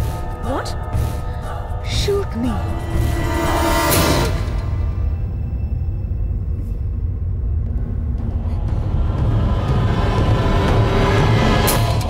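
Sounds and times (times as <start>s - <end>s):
suspenseful film score drone: 0.0s - 12.0s.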